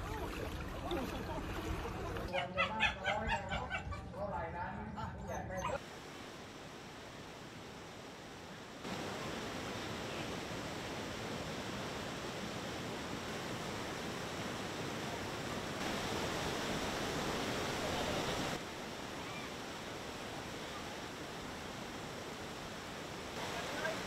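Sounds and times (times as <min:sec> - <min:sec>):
floodwater rushing: 0:00.0 - 0:02.3, 0:05.8 - 0:24.0.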